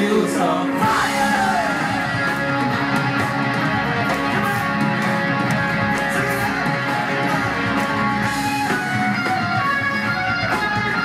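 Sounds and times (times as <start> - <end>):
bass: 0.0 - 11.0
drums: 0.0 - 11.0
electric guitars: 0.0 - 11.0.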